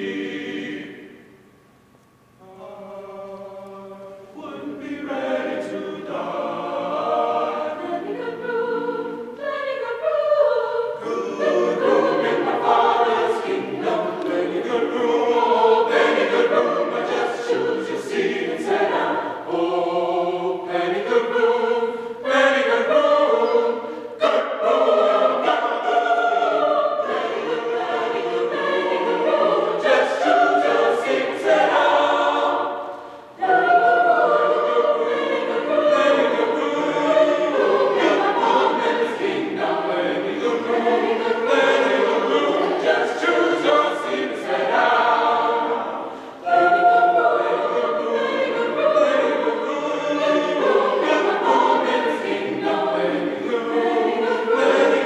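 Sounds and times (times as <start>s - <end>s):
mixed choir singing unaccompanied: 0.0s - 1.4s, 2.4s - 55.0s.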